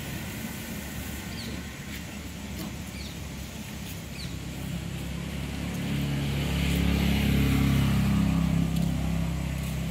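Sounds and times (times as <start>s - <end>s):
outdoor background rumble: 0.0s - 9.9s.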